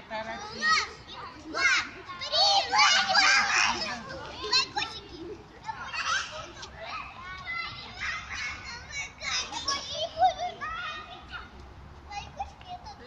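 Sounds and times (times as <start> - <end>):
toddlers chattering and calling out: 0.0 - 13.0.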